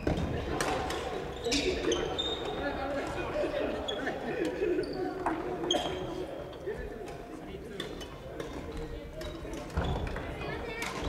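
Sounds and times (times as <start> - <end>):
sneakers squeaking on wooden floor: 1.2 - 2.7.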